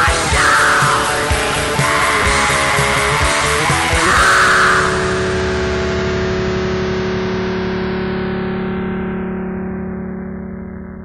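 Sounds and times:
black metal drums and guitars: 0.0 - 9.2
distorted guitar chord ringing: 0.0 - 11.0.

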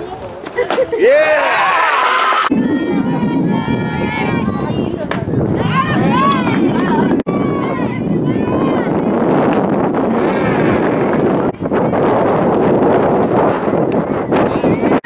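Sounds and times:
people calling out and cheering: 0.0 - 15.0
wind buffeting microphone: 2.5 - 15.0.

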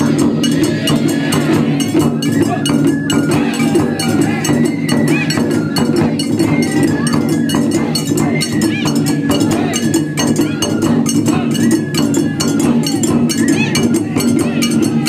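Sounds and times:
bamboo flute: 0.0 - 15.0
metallic clanging beat: 0.0 - 15.0
taiko drums playing fast rhythm: 0.0 - 15.0.

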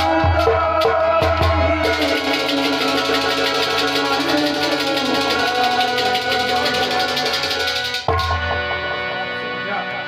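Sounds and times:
harmonium playing: 0.0 - 10.0.

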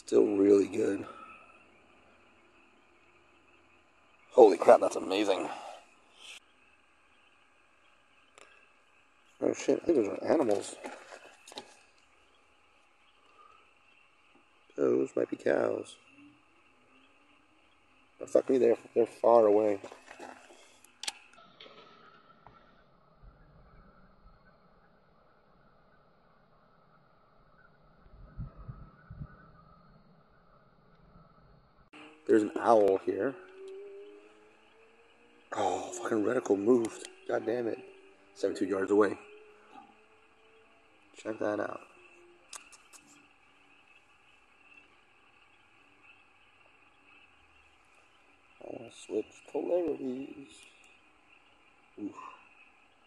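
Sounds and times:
faint steady hum: 0.0 - 53.0
night insects chorus: 0.0 - 53.0
light clicks: 19.8 - 22.2, 42.5 - 43.3
sharp click: 20.8 - 21.7, 42.5 - 43.2.

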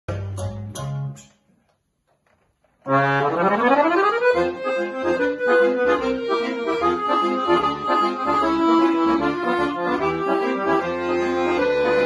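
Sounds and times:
accordion and keyboard chords: 0.1 - 1.3, 2.9 - 12.0
low bass notes: 0.1 - 1.3, 2.9 - 12.0.

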